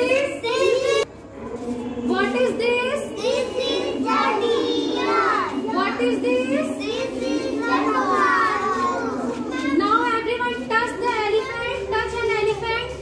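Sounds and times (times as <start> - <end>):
toddlers chattering and calling out: 0.0 - 1.7, 2.6 - 13.0.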